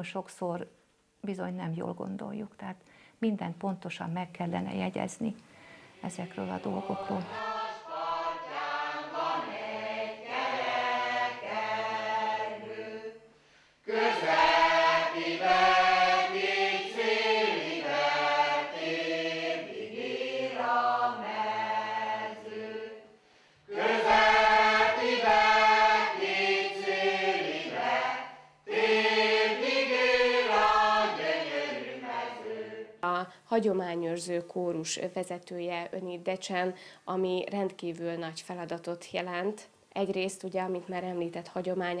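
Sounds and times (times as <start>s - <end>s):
mixed choir singing unaccompanied: 6.0s - 33.0s.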